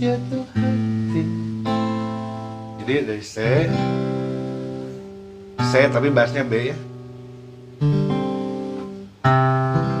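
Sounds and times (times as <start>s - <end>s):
acoustic guitar chord strummed: 0.0s - 10.0s.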